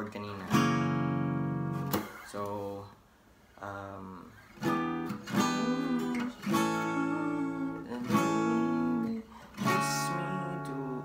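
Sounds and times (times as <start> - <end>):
acoustic guitar strumming chords: 0.0 - 2.5, 3.9 - 11.0.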